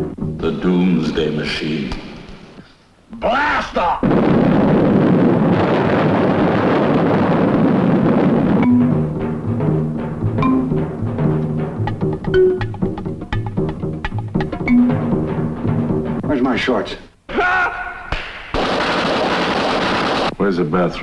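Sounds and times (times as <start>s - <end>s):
percussion drum roll: 8.5s - 16.5s
pitched drum strikes and knocks: 8.6s - 16.0s.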